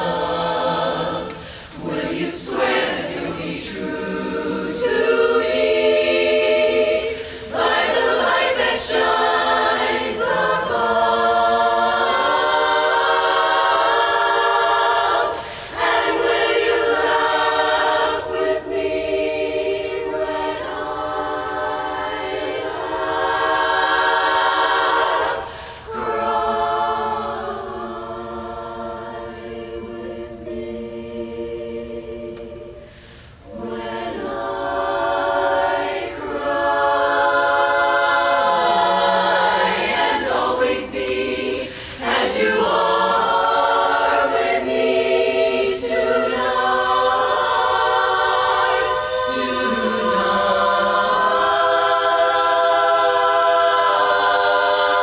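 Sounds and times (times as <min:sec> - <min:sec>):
women's chorus singing in harmony: 0:00.0 - 0:55.0.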